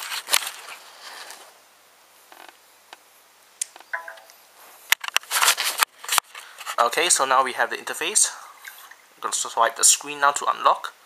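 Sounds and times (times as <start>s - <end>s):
soft clicks and rustles: 2.3s - 6.9s.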